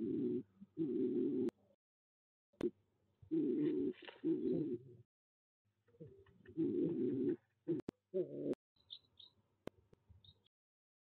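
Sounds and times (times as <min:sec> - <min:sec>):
pigeon cooing: 0:00.0 - 0:01.6, 0:03.3 - 0:05.0, 0:06.0 - 0:08.6.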